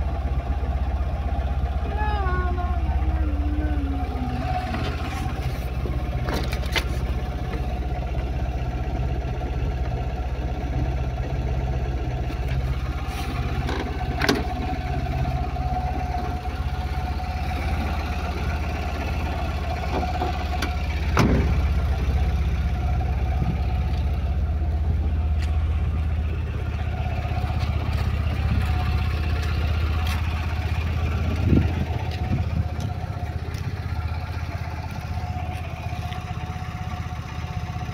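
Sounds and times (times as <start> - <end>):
pickup engine idling: 0.0 - 37.9.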